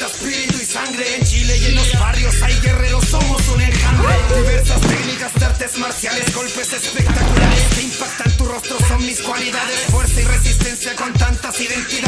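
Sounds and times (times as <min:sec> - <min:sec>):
rapping over a beat: 0:00.0 - 0:12.0
deep bass: 0:01.3 - 0:04.9.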